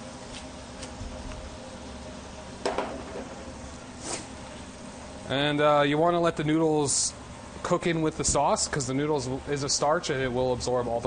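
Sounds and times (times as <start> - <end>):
kitchen hum: 0.0 - 11.0.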